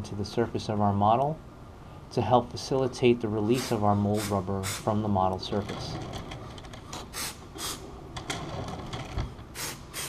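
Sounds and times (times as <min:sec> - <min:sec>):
aerosol spray hissing bursts: 0:07.1 - 0:07.8, 0:09.5 - 0:10.0.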